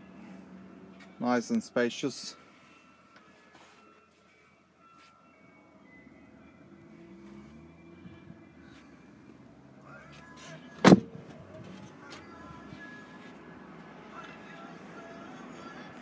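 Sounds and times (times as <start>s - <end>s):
car door slamming: 10.8s - 11.4s.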